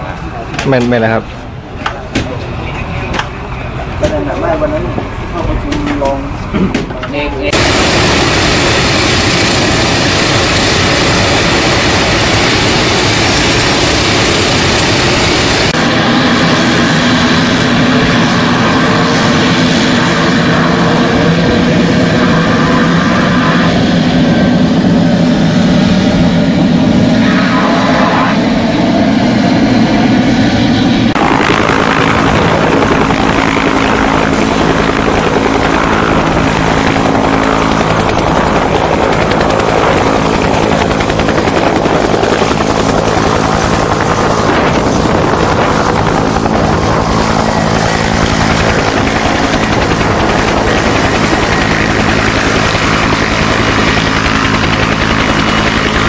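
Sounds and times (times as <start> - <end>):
propeller aircraft engines: 0.0 - 56.0.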